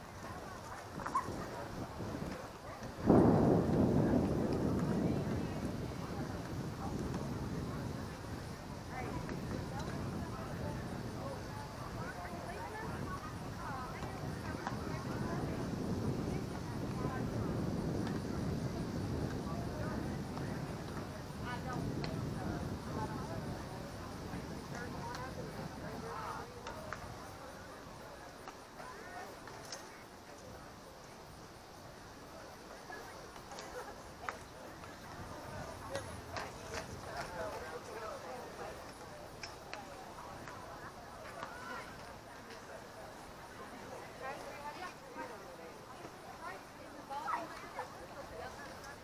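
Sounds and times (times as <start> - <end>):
distant people talking: 0.0 - 49.0
low rumbling outdoor noise: 0.0 - 49.0.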